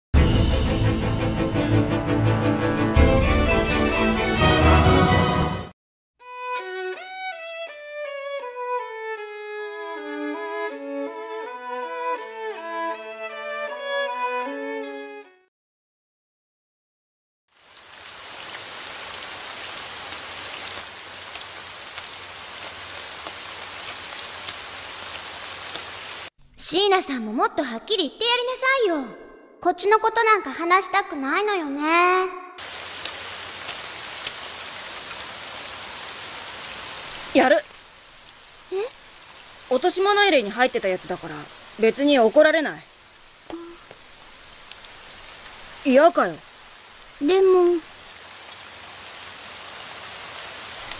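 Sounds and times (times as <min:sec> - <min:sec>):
steady rain falling: 0:17.5 - 0:26.3, 0:32.6 - 0:50.9
ticks of raindrops: 0:17.5 - 0:26.3, 0:32.6 - 0:50.9.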